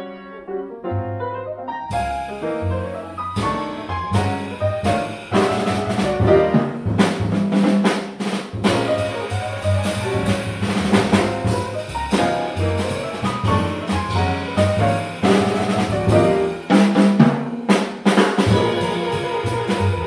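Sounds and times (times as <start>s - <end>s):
grand piano: 0.0s - 20.0s
upright bass: 1.9s - 7.6s, 8.5s - 16.8s, 18.4s - 20.0s
drum kit: 1.9s - 20.0s.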